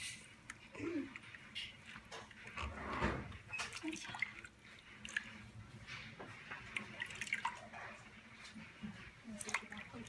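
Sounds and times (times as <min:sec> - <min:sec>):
water splashing: 0:06.4 - 0:10.0.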